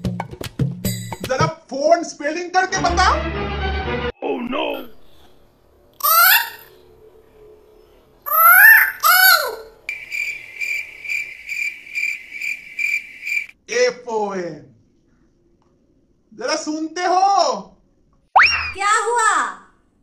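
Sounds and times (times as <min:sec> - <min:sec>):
cricket chirping: 0:09.7 - 0:13.6.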